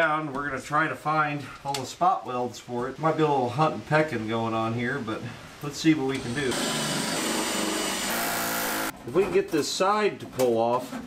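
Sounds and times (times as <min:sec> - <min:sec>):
drill cutting sheet metal: 0:06.1 - 0:08.9.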